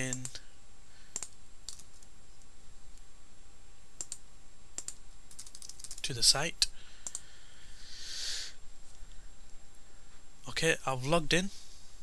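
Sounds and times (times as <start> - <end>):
computer key and mouse clicks: 0.0 - 0.4, 1.1 - 1.8, 4.0 - 4.2, 4.8 - 6.0, 7.0 - 7.2
faint steady hiss: 0.0 - 12.0.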